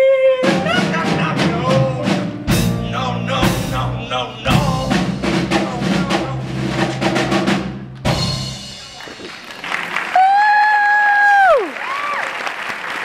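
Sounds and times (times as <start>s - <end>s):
pit band with drum kit playing: 0.0s - 10.3s
loud accented band hits: 0.4s - 9.4s.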